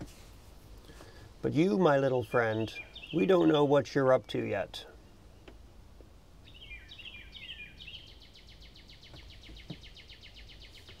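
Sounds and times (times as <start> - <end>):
songbird singing faintly: 0.0 - 11.0.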